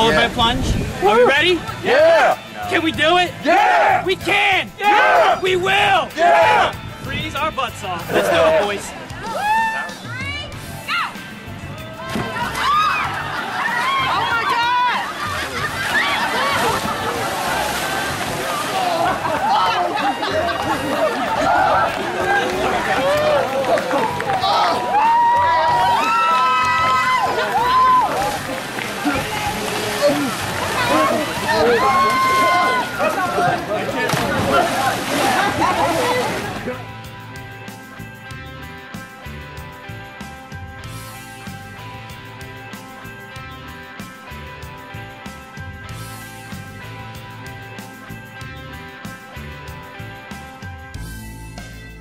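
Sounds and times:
people shouting and yelling: 0:00.0 - 0:37.0
water splashing: 0:12.0 - 0:36.9
guitar music: 0:27.0 - 0:52.0.

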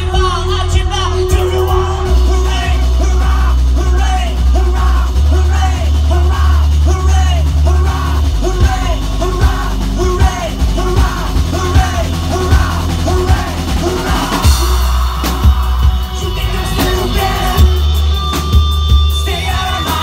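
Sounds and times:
live rock band playing: 0:00.0 - 0:20.0
drum hits: 0:06.1 - 0:20.0.

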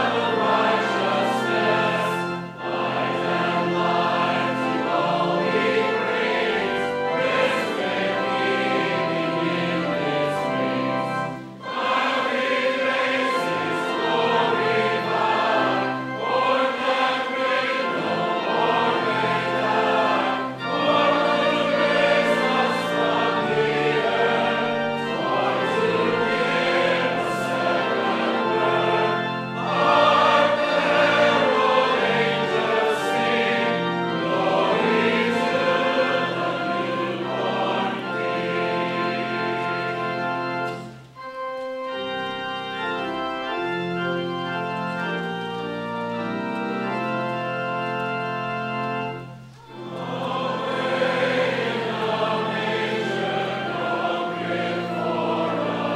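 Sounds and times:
congregation singing a hymn: 0:00.0 - 0:55.9
organ playing: 0:00.0 - 0:55.9.

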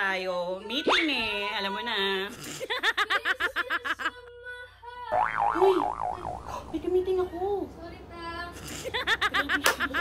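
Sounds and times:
comic boing warbling tone: 0:05.1 - 0:06.7.

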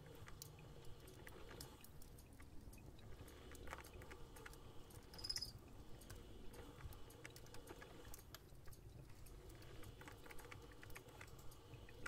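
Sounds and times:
light clicks and taps: 0:00.0 - 0:12.0.

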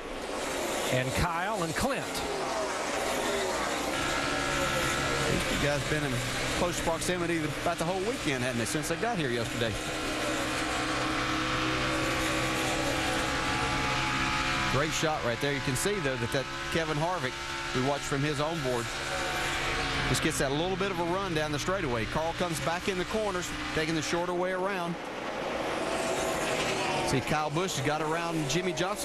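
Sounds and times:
race car engine drone: 0:00.0 - 0:29.0
road and wind noise: 0:00.0 - 0:29.0.

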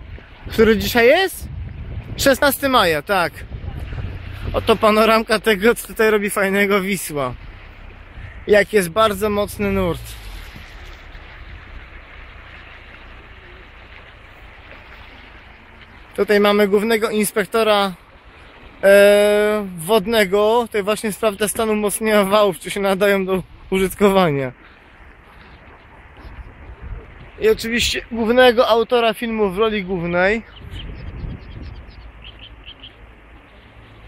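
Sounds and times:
wind rumble on microphone: 0:00.0 - 0:06.2, 0:07.0 - 0:16.2, 0:23.4 - 0:28.6, 0:29.5 - 0:34.0
river current rushing: 0:00.0 - 0:34.0.

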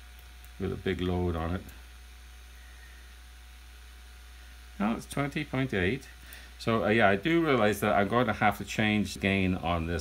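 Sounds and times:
high whine and hiss: 0:00.0 - 0:10.0
low electrical hum: 0:00.0 - 0:10.0.

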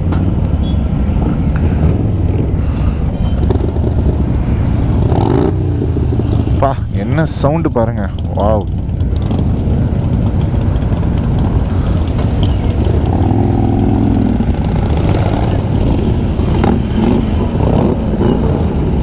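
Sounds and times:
motorcycle passing close: 0:00.7 - 0:06.8, 0:08.2 - 0:19.0
motorcycles riding past: 0:00.8 - 0:07.2, 0:08.2 - 0:19.0.

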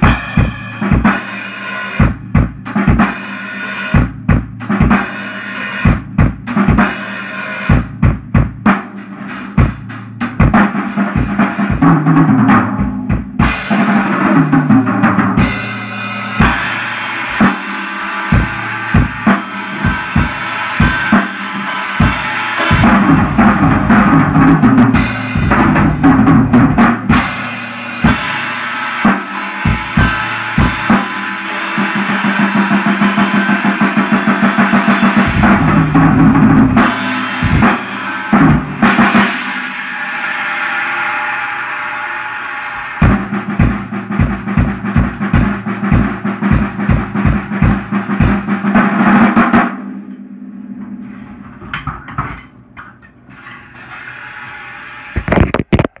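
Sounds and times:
acoustic drum kit played hard: 0:00.0 - 0:52.5.

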